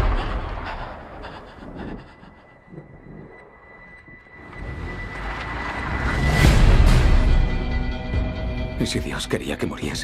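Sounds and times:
low rumble: 0.0s - 8.0s.

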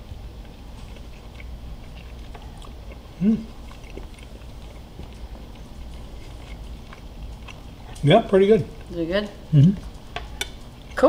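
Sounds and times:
low steady hum: 0.0s - 11.0s
person chewing: 0.0s - 11.0s
wet mouth clicks: 0.8s - 8.0s.

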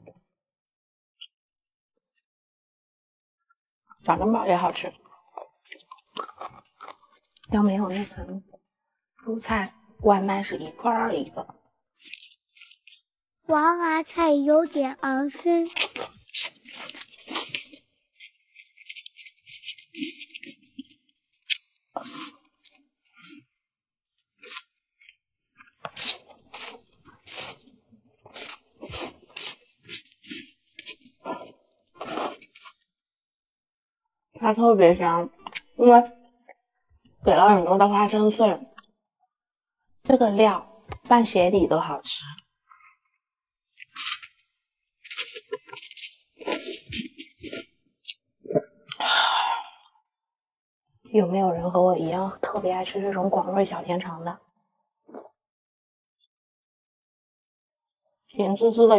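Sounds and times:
person chewing food: 5.2s - 7.5s, 12.0s - 13.1s, 15.7s - 32.9s, 43.8s - 48.2s
noodles being slurped: 5.3s - 7.5s, 12.0s - 13.1s, 13.7s - 20.9s, 21.9s - 23.6s, 24.2s - 32.8s, 45.0s - 47.7s
wet chewing smacks and clicks: 5.3s - 7.5s.

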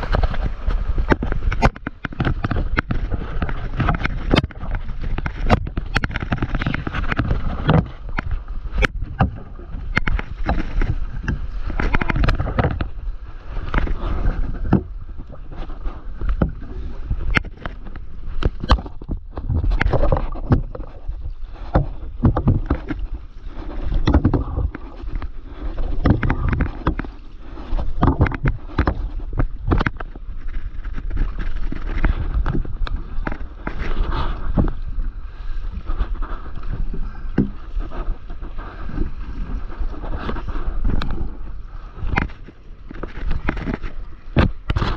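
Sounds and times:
water sloshing against paddleboard: 0.0s - 44.9s
wind rumble on microphone: 0.0s - 44.9s.

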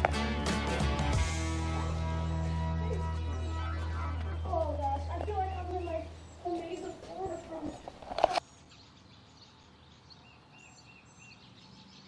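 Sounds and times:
faint songbirds calling: 2.8s - 12.0s
high bird chirps: 3.3s - 12.0s.

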